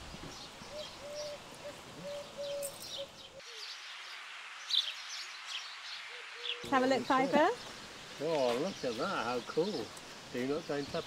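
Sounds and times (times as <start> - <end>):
background hiss: 0.0 - 11.0
small birds chirping: 0.2 - 11.0.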